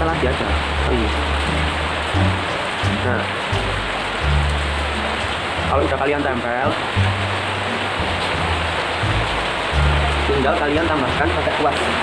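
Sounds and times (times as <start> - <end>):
background music with bass line: 0.0 - 12.0
rain hissing: 0.0 - 12.0.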